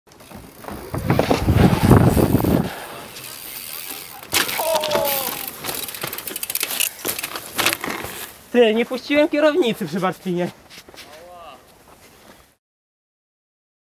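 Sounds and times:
bike clicks and rattles: 0.1s - 8.4s
person shouting: 4.5s - 5.6s.

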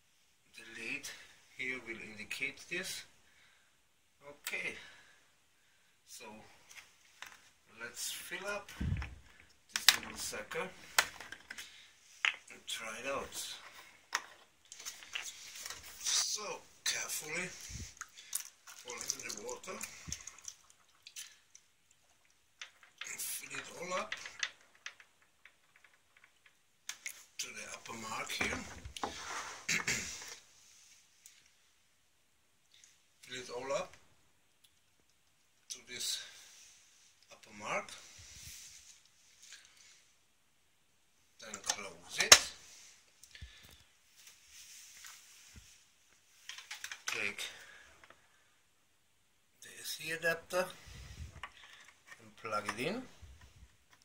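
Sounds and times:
person speaking: 4.2s - 5.1s, 7.6s - 20.4s, 23.0s - 24.7s, 27.0s - 30.3s, 41.4s - 42.7s, 46.9s - 47.8s, 49.6s - 51.4s, 52.1s - 53.2s
water drips: 17.9s - 22.4s
water pouring into plastic tank: 18.0s - 21.7s.

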